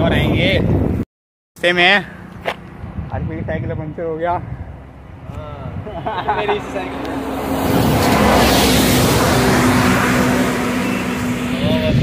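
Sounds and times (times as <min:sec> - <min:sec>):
bus passing close by: 0:06.3 - 0:12.0.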